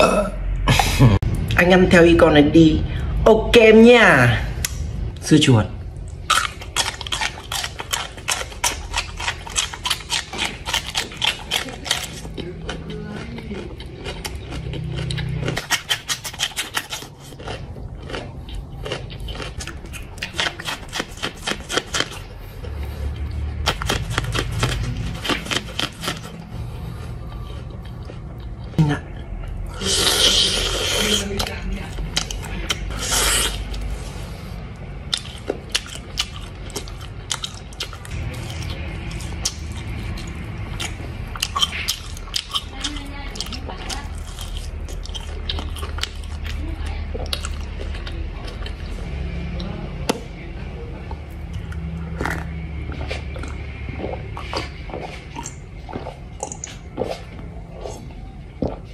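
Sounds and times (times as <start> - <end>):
crunching bites and chewing: 5.9 - 50.3, 51.2 - 58.9.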